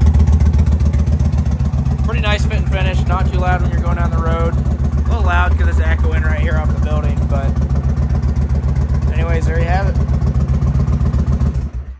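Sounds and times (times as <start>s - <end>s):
motorcycle engine idling: 0.0s - 11.9s.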